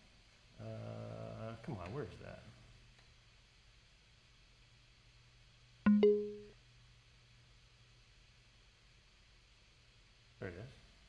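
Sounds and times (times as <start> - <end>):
synthesizer notes: 5.9 - 6.5.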